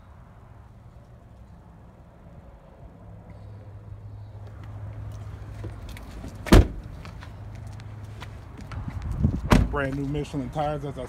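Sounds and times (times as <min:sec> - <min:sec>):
car door thud: 0:06.4 - 0:06.9, 0:09.5 - 0:09.7.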